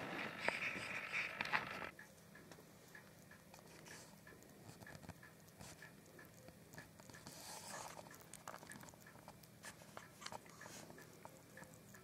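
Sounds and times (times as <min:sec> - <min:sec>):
hedgehog lapping milk: 0:03.0 - 0:12.0.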